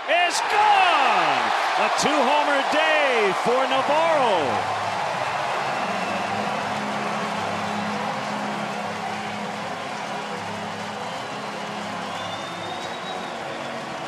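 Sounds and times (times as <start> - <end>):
crowd cheering: 0.0 - 14.0.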